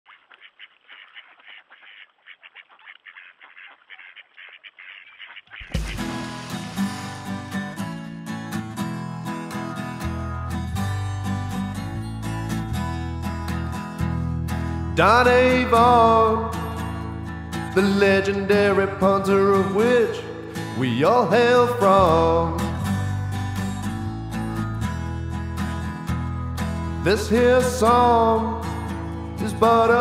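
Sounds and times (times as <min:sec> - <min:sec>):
ducks quacking: 0:00.1 - 0:07.2, 0:09.3 - 0:11.0
guitar and bass music: 0:05.6 - 0:30.0.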